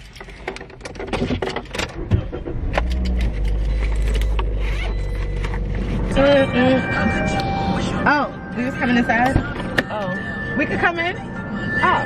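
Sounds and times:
car engine starting and running: 0:00.0 - 0:12.0.

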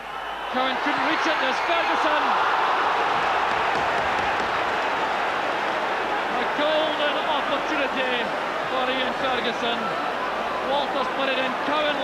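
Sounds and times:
football crowd cheering: 0:00.0 - 0:12.0.

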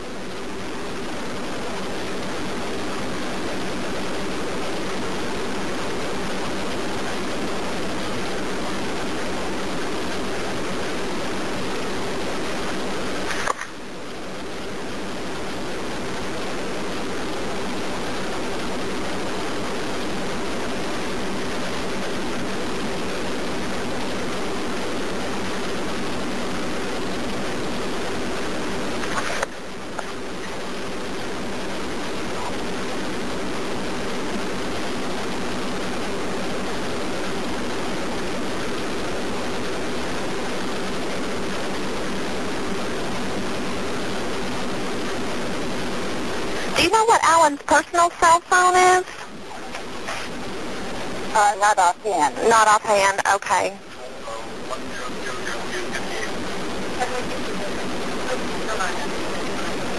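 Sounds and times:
low steady hum: 0:00.0 - 0:59.9
telephone line hiss: 0:00.0 - 0:59.9.

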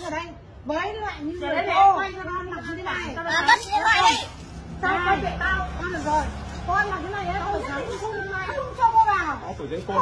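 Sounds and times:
people arguing: 0:00.0 - 0:10.0.

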